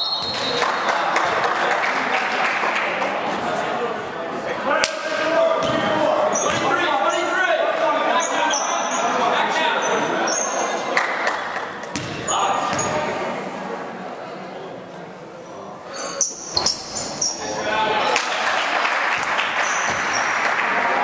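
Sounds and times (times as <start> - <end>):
echoing indistinct chatter: 0.0 - 21.0
basketball bouncing on hardwood floor: 11.9 - 12.2.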